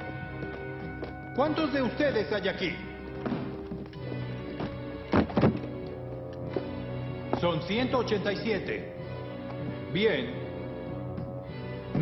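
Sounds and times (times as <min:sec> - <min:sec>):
orchestral music: 0:00.0 - 0:12.0.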